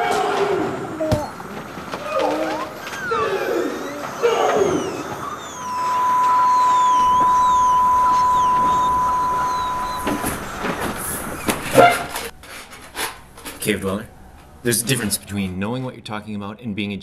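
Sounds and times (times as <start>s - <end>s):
high whistling glides: 2.0s - 12.4s
loud electronic beep tone: 3.8s - 12.2s.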